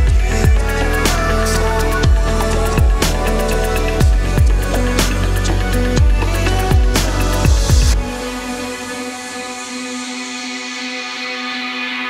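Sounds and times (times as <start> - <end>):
sustained synthesizer chords: 0.0 - 12.0.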